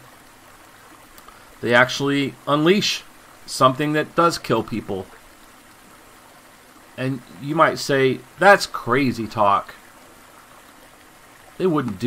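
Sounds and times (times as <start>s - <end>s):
stream flowing over rocks: 0.0s - 12.0s.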